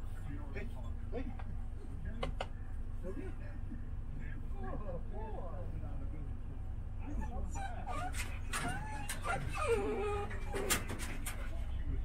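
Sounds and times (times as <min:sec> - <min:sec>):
dog whimpering: 0:07.1 - 0:10.9.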